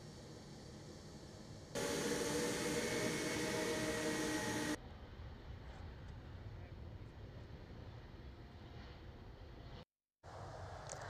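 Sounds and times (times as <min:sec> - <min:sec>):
jet engines roaring: 0:01.7 - 0:04.8.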